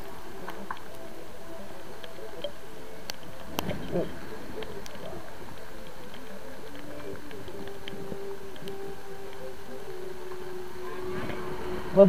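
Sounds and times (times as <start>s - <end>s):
steady engine drone: 0.0s - 12.0s.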